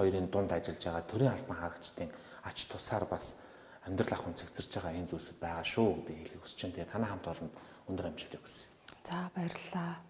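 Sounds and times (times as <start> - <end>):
quiet conversational talk: 0.0 - 10.0.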